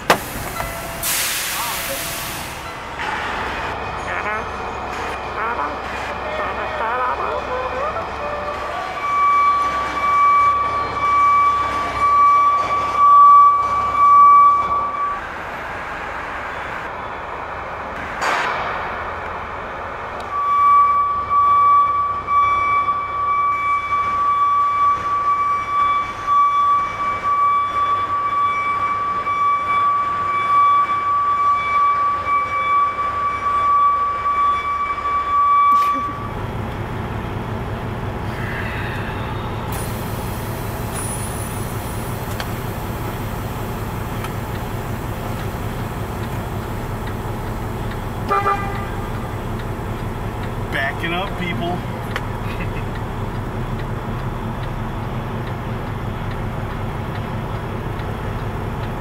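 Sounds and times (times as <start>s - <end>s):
short sharp hiss: 0.2s - 2.6s.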